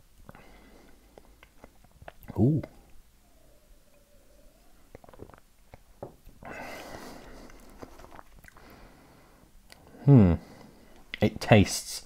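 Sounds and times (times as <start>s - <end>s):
soft breathy rush: 0.3s - 1.4s, 2.7s - 5.3s, 6.4s - 11.1s
wet mouth clicks: 1.2s - 3.0s, 4.9s - 5.9s
sipping and swallowing drink: 1.2s - 8.7s.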